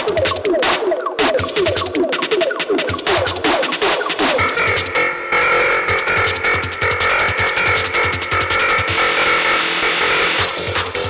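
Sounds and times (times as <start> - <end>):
electronic kick drum: 0.0 - 5.0, 5.9 - 9.2, 10.0 - 11.0.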